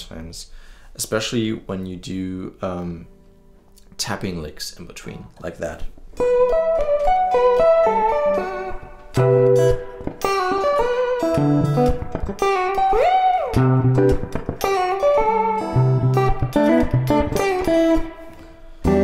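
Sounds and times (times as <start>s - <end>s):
electric guitar tapping lick: 6.0s - 19.0s.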